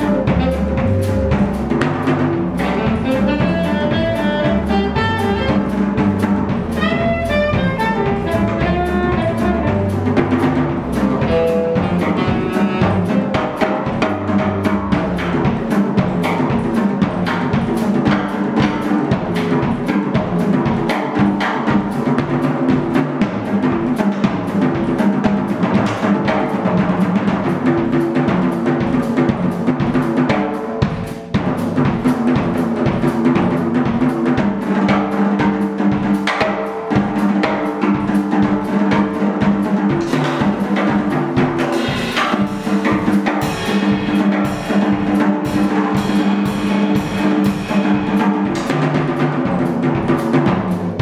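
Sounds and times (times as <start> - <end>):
jazz drumming on drum kit: 0.0 - 51.0.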